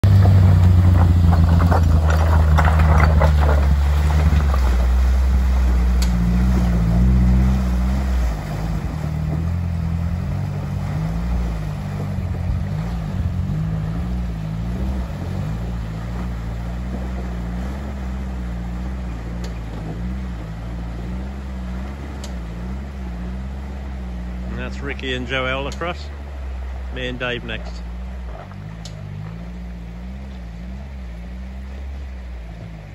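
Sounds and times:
off-road vehicle engine running: 0:00.0 - 0:32.9.

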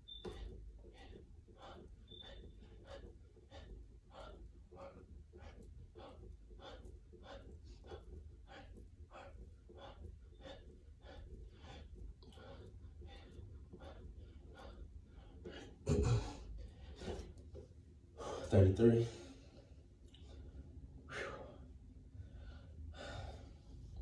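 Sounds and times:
man breathing hard and fast: 0:00.0 - 0:24.0.

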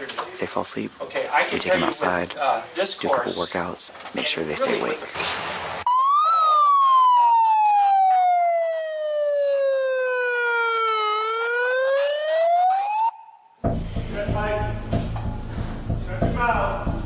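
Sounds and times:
megaphone siren: 0:05.9 - 0:13.6.

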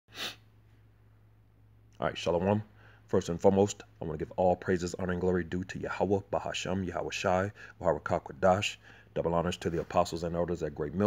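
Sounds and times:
person breathing into microphone: 0:00.1 - 0:00.4
faint low hum: 0:00.4 - 0:11.0.

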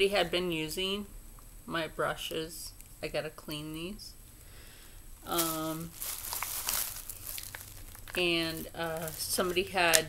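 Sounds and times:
bag rustling and crinkling: 0:05.2 - 0:10.0.

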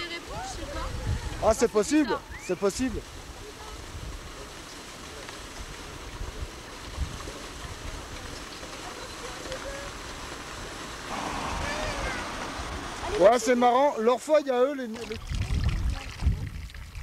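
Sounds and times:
faint distant voices: 0:00.0 - 0:14.8
wind buffeting microphone: 0:00.2 - 0:04.6, 0:05.5 - 0:14.4, 0:15.0 - 0:17.0.

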